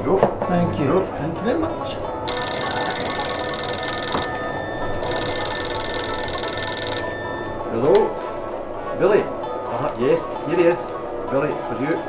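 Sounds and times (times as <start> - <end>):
telephone ringing: 2.3 - 7.6.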